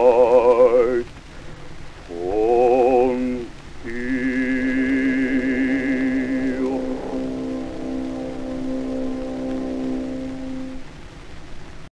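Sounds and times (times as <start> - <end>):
record surface hiss and crackle: 0.0 - 11.9
orchestra holding a chord: 3.9 - 10.9.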